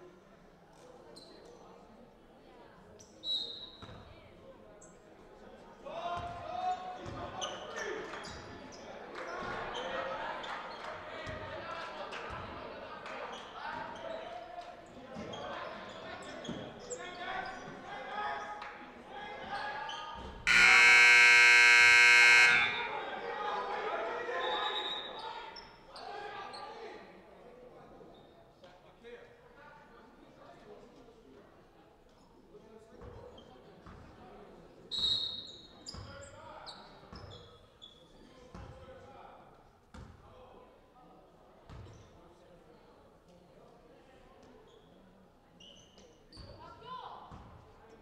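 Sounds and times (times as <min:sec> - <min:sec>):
indistinct voices in hall: 0:00.0 - 0:48.0
scoreboard buzzer: 0:20.5 - 0:23.0.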